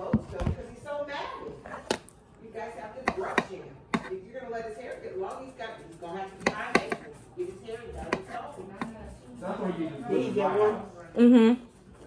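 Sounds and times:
knife slicing cucumber on countertop: 6.4 - 7.2.

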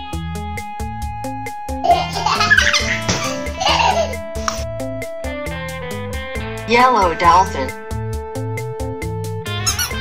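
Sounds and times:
children's music with steady beat: 0.0 - 10.0
baby giggling: 1.8 - 4.6, 9.6 - 10.0.

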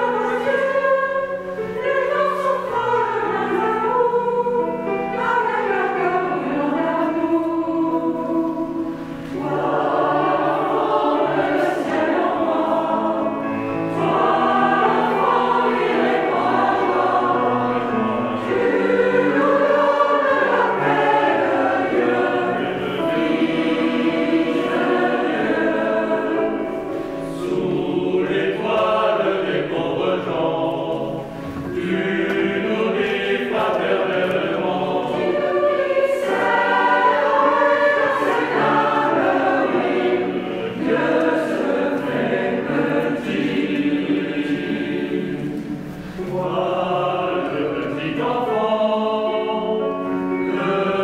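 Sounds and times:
mixed choir singing a carol: 0.0 - 51.0.

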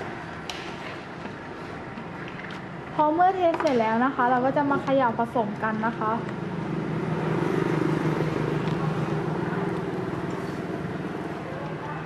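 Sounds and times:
vehicle engine humming: 6.2 - 12.0.

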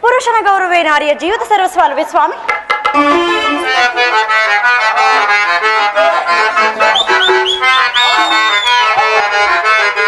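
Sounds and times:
harmonium playing: 2.5 - 10.0
ornamented high notes: 2.9 - 10.0.

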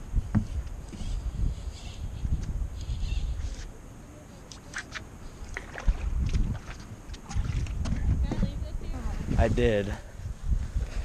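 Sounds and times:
wind buffeting microphone: 0.0 - 3.6, 5.2 - 11.0.

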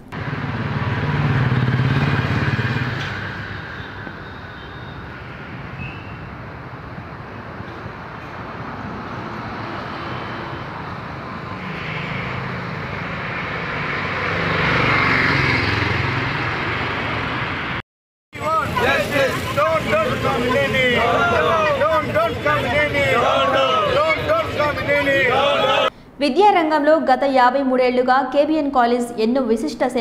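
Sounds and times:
engines passing: 0.0 - 17.8, 18.4 - 25.9
street traffic noise: 0.0 - 26.2.

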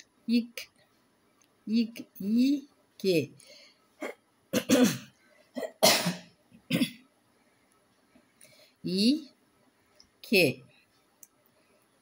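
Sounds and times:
person clearing throat: 4.0 - 7.0
person coughing: 4.0 - 7.0.

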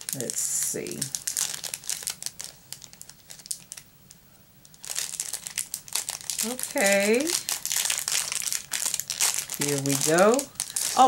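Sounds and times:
plastic wrapping crinkling: 0.0 - 11.0.

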